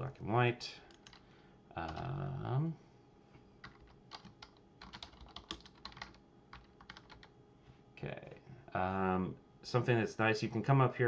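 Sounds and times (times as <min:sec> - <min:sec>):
keyboard keys clicking: 0:03.6 - 0:07.3.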